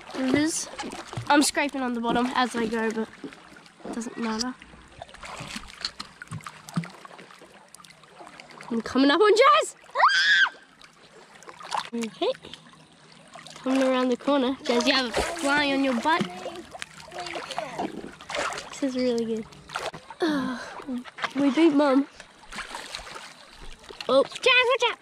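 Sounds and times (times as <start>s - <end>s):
shallow river water moving: 0.0s - 25.0s
child squealing: 10.0s - 10.6s.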